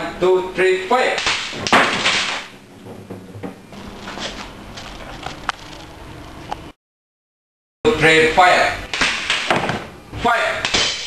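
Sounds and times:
monitor crashing onto desk: 0:01.5 - 0:02.5.

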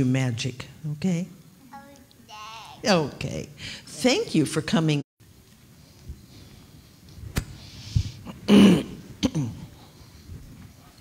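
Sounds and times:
soft breathy hiss: 0:05.7 - 0:11.0.

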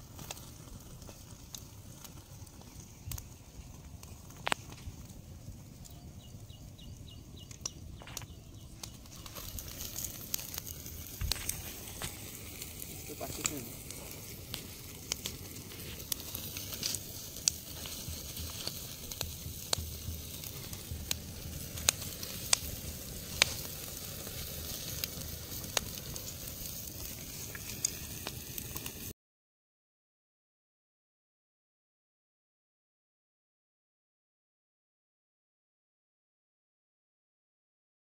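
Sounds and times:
wood fire crackling: 0:00.0 - 0:29.1.

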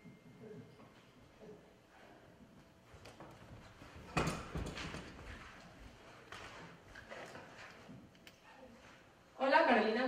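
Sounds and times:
soft knocks and rustles: 0:02.4 - 0:08.2.

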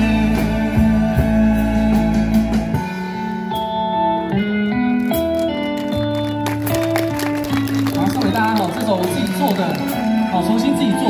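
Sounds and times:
instrumental band music through pa: 0:00.0 - 0:11.0.

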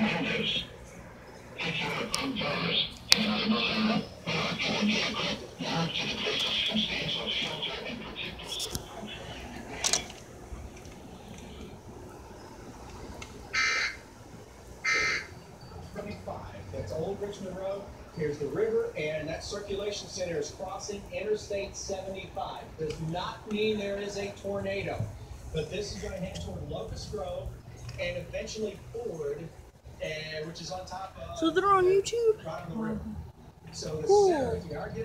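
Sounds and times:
people talking: 0:00.0 - 0:00.7, 0:01.6 - 0:10.0, 0:15.9 - 0:35.0
faint music: 0:14.1 - 0:35.0.

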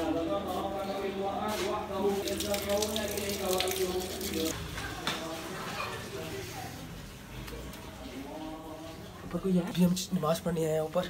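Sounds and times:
water splashing: 0:02.0 - 0:04.6
water running from tap: 0:02.1 - 0:04.6.

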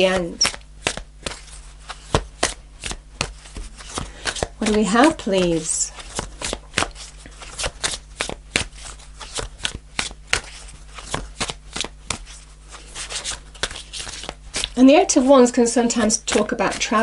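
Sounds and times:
cards being shuffled: 0:00.0 - 0:17.0.

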